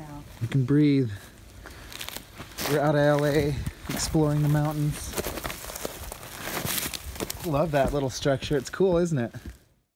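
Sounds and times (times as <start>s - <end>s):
footsteps on pine needles and twigs: 0.3s - 9.7s.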